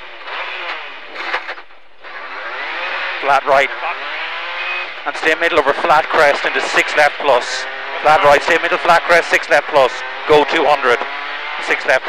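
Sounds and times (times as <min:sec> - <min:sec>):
car engine accelerating hard: 0:00.0 - 0:12.0.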